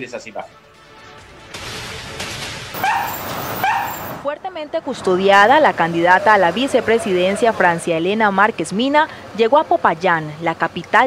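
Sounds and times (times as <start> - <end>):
dog barking: 2.8 - 4.1
vehicles passing: 2.8 - 11.0.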